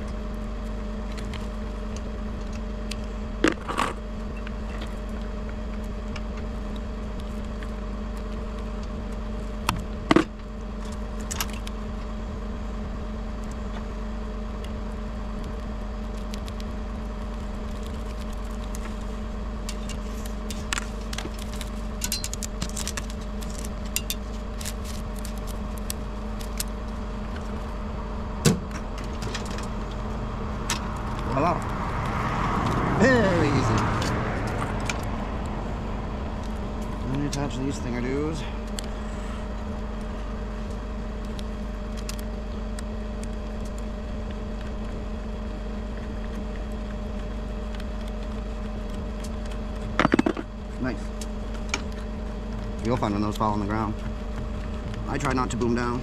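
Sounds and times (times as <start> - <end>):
truck engine idling: 0.0 - 56.0.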